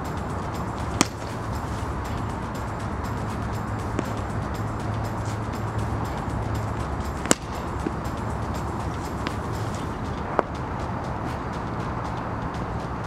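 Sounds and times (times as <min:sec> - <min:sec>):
background hum: 0:00.0 - 0:13.0
cricket bat striking ball: 0:00.7 - 0:01.9, 0:03.1 - 0:04.4, 0:06.1 - 0:08.1, 0:08.8 - 0:09.9.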